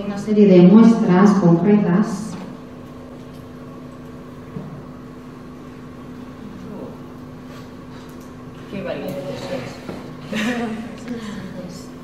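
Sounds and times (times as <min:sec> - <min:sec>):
steady hum and hiss: 0:00.0 - 0:12.0.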